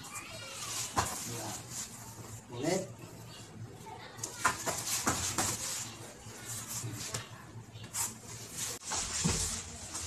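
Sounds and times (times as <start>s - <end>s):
high-pitched voices chattering: 0.0s - 8.6s.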